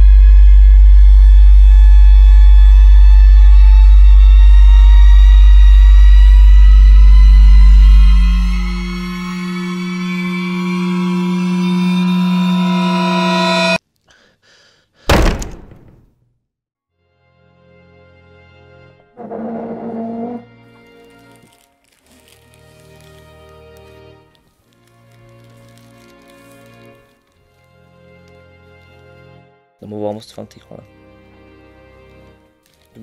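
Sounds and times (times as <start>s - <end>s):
loud low drone: 0.0s - 13.8s
rising held tones: 0.1s - 13.8s.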